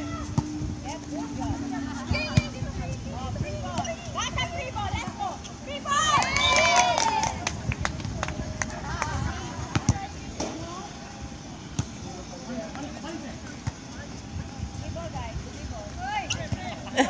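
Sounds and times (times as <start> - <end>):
background chatter: 0.0 - 17.0
players shouting: 3.8 - 7.4.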